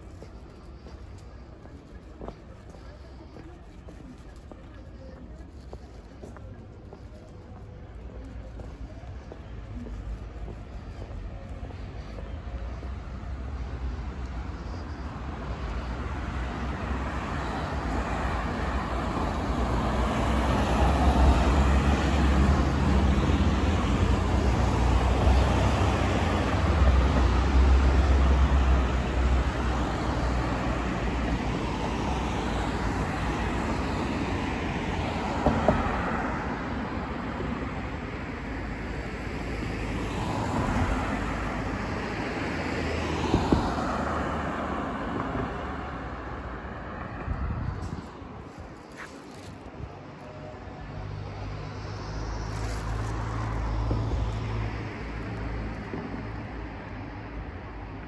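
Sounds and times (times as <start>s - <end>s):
cars passing: 0.0s - 58.0s
heavy vehicle rumble: 0.0s - 58.0s.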